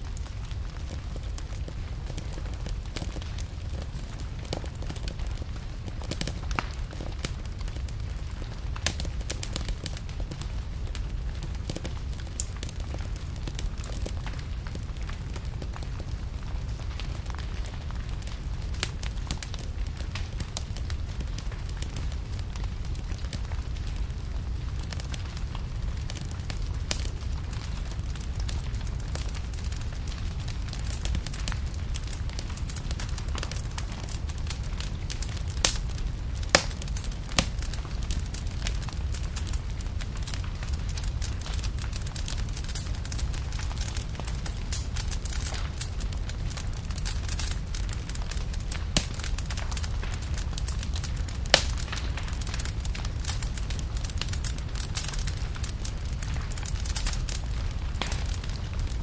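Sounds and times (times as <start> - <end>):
fire crackling and popping: 0.0 - 59.0.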